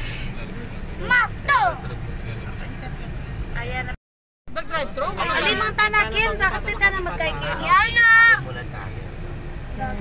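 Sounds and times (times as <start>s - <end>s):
vehicle low rumble: 0.0s - 10.0s.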